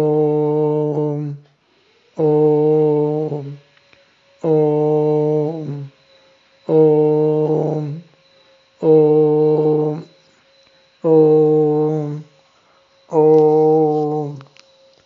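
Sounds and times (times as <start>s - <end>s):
man chanting a mantra: 0.0s - 3.7s, 4.4s - 8.2s, 8.8s - 10.4s, 11.0s - 12.4s, 13.0s - 14.6s.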